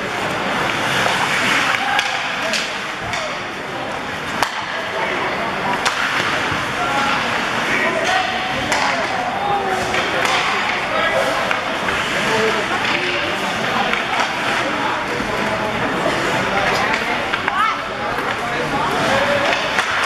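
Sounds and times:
crowd and player voices: 0.0 - 20.0
hockey sticks clacking on puck: 0.0 - 20.0.

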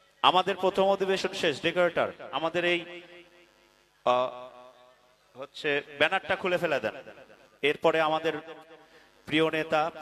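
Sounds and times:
man's voice over public address: 0.2 - 3.3, 4.0 - 10.0.

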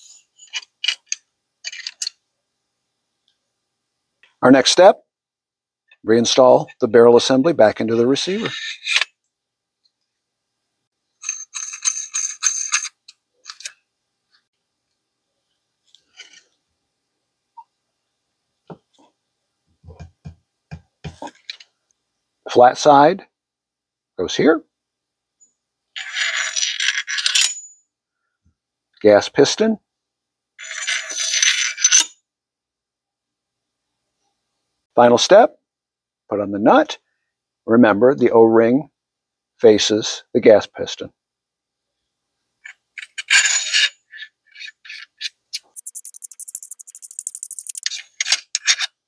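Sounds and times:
metal-on-metal scraping rattle: 42.7 - 49.0.

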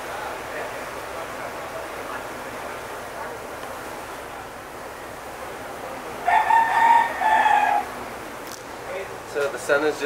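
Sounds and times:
rooster crowing: 6.2 - 8.0.

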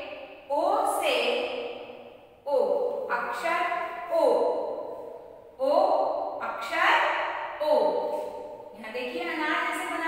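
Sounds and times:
woman drawing out syllables: 2.4 - 9.8.

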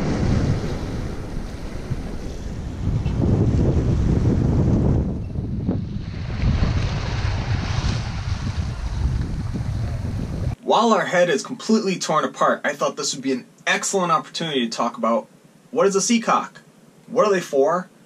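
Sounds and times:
waves breaking on rocky shore: 0.0 - 4.9, 5.8 - 10.6
wind buffeting microphone: 0.0 - 10.6.

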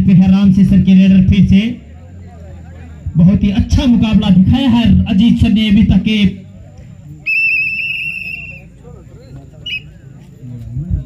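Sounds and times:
pea whistle trill: 7.2 - 8.7, 9.6 - 10.0.

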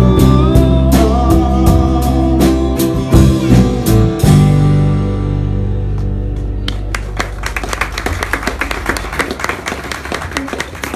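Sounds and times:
small audience clapping: 6.0 - 10.9.

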